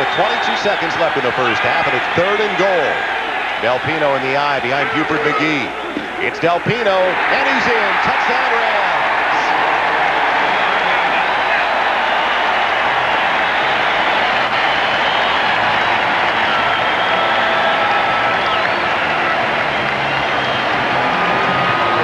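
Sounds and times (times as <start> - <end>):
stadium crowd cheering: 0.0 - 22.0.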